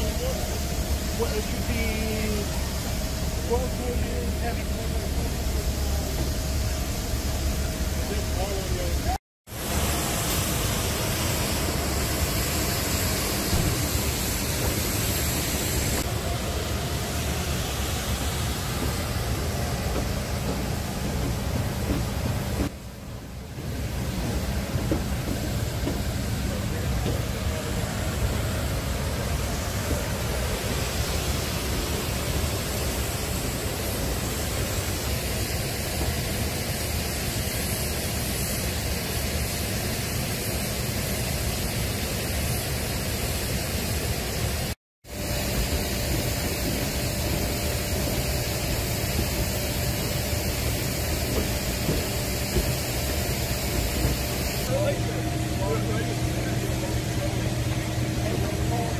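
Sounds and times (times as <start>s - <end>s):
jet aircraft rushing noise: 0.0s - 58.9s.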